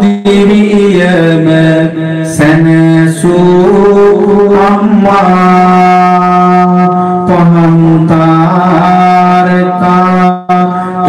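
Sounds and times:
person chanting into microphone: 0.0 - 11.0.

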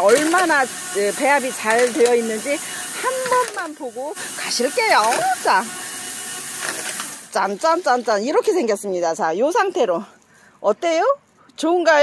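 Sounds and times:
person speaking: 0.0 - 5.8
drum mixer churning soil: 0.0 - 8.7.

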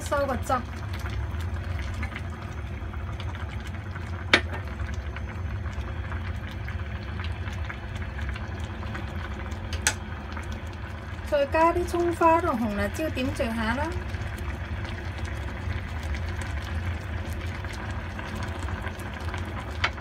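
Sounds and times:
broth simmering and bubbling: 0.0 - 20.0.

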